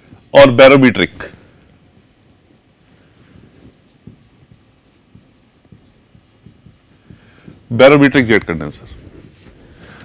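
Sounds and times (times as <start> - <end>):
light marker taps: 3.4 - 7.7
marker squeaking on whiteboard: 3.4 - 8.0.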